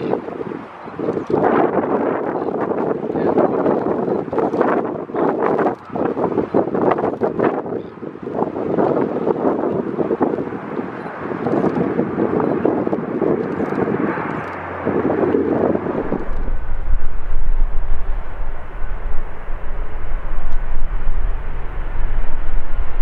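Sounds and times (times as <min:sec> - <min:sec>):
jet engines roaring: 0:00.0 - 0:23.0
wind buffeting microphone: 0:00.0 - 0:23.0.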